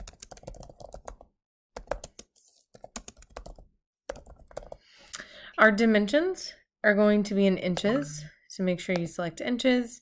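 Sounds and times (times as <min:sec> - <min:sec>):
typing on computer keyboard: 0:00.0 - 0:04.8.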